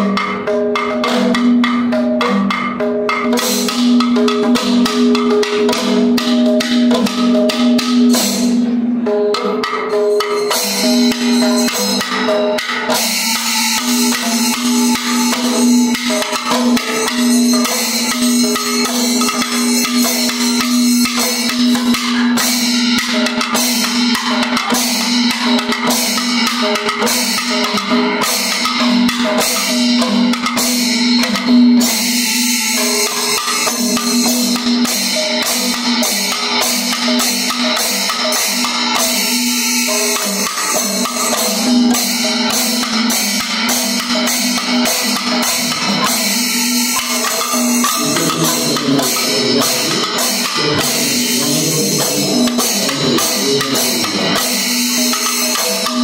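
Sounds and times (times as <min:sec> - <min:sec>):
sharp metallic strokes: 0:10.4 - 0:24.0
barrel drum rapid strokes: 0:33.1 - 0:56.0.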